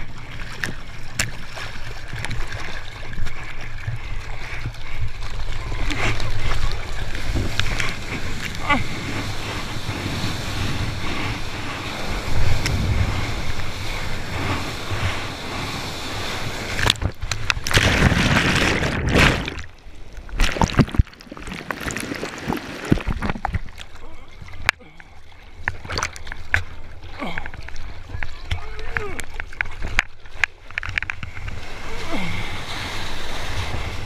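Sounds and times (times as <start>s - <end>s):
rushing water: 0.0s - 34.0s
water sloshing and splashes: 0.0s - 34.0s
wind on microphone: 5.5s - 19.6s
breaking whitewash rush: 7.2s - 17.0s, 20.4s - 23.2s.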